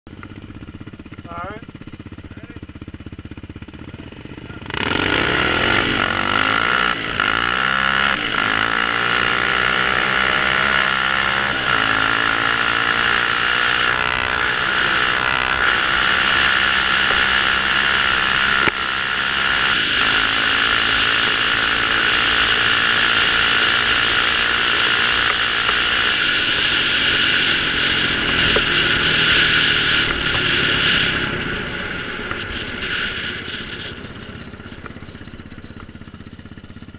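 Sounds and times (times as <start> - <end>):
quad engine revving: 3.3 - 36.9
rushing wind noise: 5.0 - 35.1.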